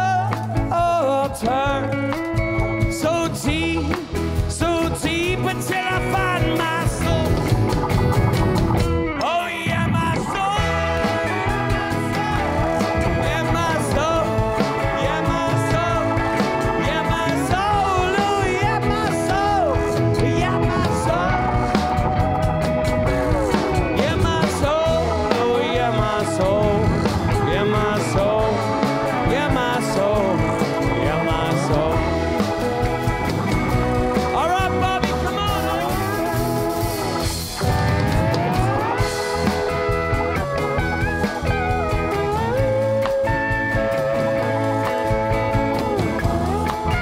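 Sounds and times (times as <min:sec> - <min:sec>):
live rock band playing: 0:00.0 - 0:47.0
steady drum beat: 0:00.0 - 0:47.0
lead guitar bending notes: 0:01.5 - 0:47.0.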